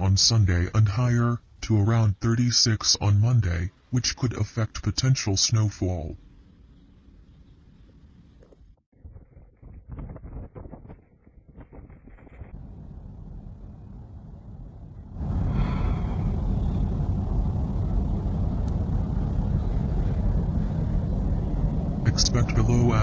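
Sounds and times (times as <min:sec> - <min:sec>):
storm wind on microphone: 0:09.2 - 0:23.0.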